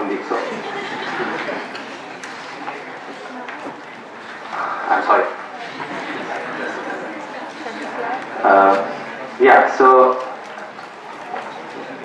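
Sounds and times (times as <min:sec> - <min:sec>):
sound system room noise: 0:00.0 - 0:12.0
man speaking: 0:04.5 - 0:05.4, 0:08.4 - 0:10.3.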